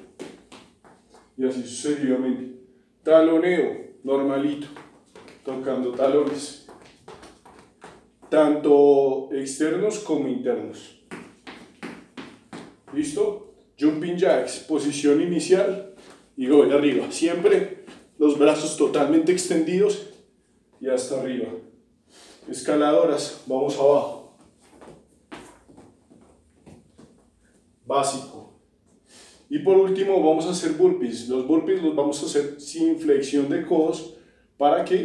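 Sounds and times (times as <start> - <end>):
feet landing thuds: 0.0 - 1.4, 4.6 - 8.4, 11.0 - 13.4, 24.2 - 27.6
hands slapping heels: 0.0 - 1.4, 4.6 - 8.4, 11.0 - 13.3, 24.4 - 27.6.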